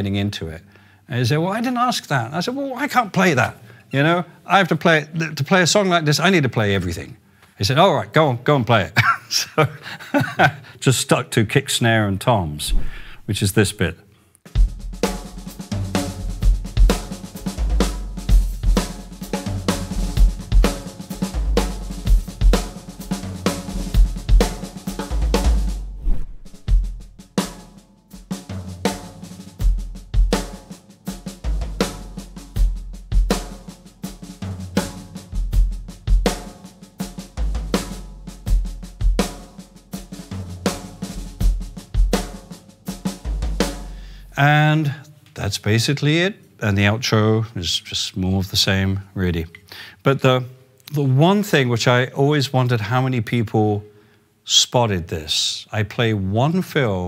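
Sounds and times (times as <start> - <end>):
rock drum kit: 14.5 - 44.4.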